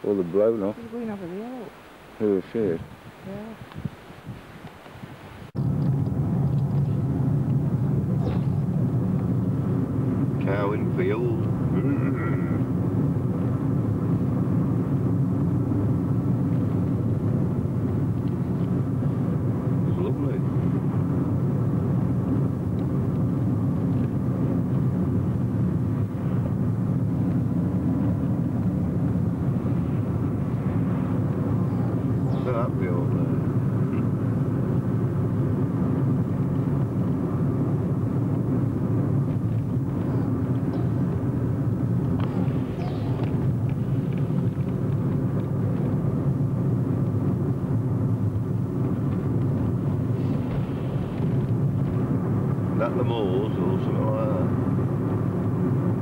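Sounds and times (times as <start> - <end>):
car driving on a wet road: 5.5 - 56.0.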